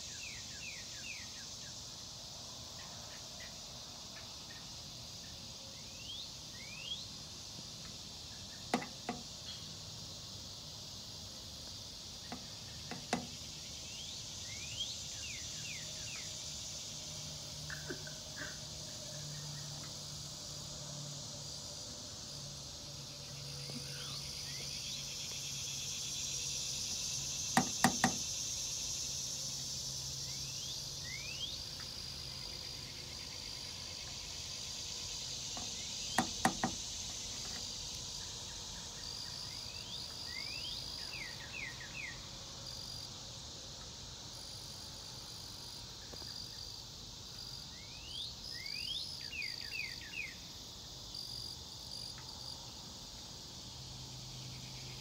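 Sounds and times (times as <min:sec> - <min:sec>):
insect chorus hiss: 0:00.0 - 0:55.0.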